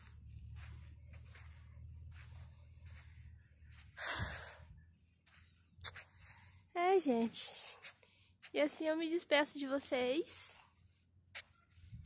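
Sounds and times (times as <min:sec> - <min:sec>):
low rumble: 0:00.0 - 0:06.6.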